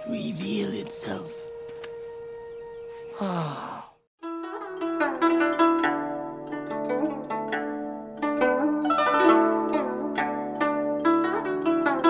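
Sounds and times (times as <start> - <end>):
soft background music: 0.0 - 5.2
man sighing: 3.2 - 4.0.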